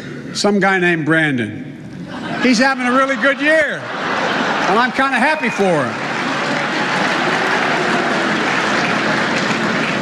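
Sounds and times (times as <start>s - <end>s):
audience laughing: 1.9s - 9.9s
audience clapping: 4.2s - 10.0s.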